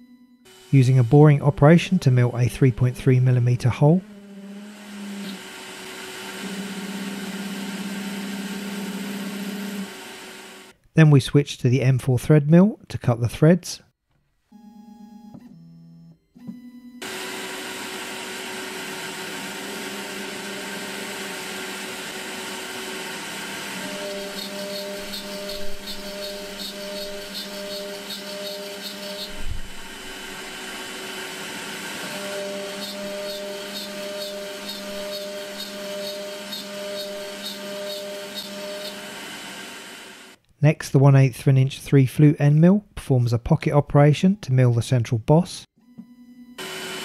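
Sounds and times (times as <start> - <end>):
cnc mill spindle running: 0.5 - 10.7, 17.0 - 40.4, 46.6 - 47.0
pulsing tone: 23.9 - 30.7, 32.2 - 39.1.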